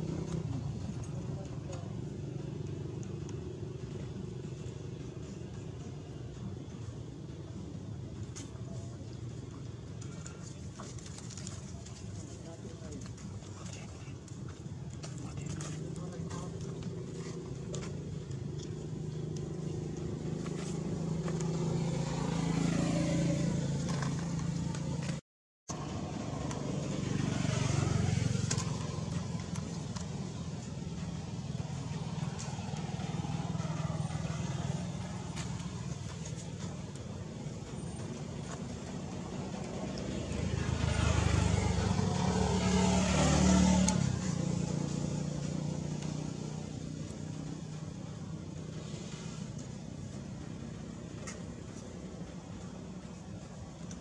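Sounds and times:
passing road traffic: 0.0 - 54.0.

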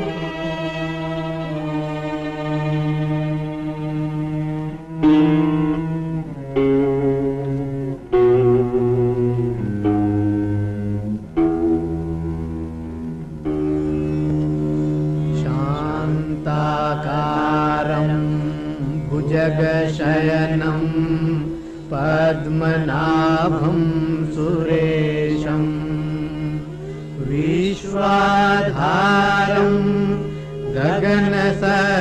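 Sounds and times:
melodic chanting: 0.0 - 6.3, 13.4 - 32.0.

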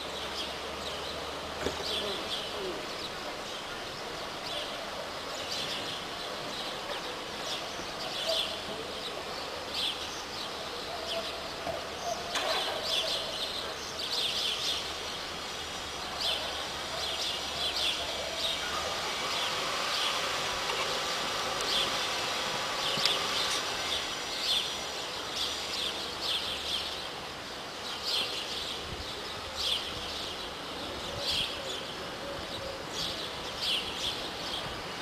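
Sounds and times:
outdoor background noise: 0.0 - 35.0.

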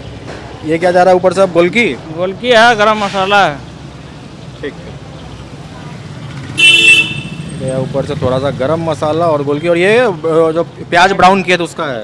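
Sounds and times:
vehicle horn honk: 6.6 - 7.5.

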